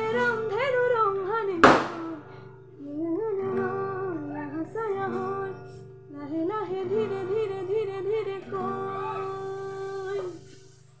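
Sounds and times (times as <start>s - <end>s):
girl singing: 0.0s - 10.8s
acoustic guitar chord: 0.0s - 11.0s.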